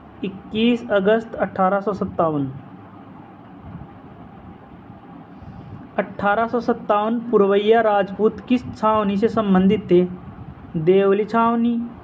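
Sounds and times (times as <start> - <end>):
dull rumble with hiss: 0.0 - 12.0.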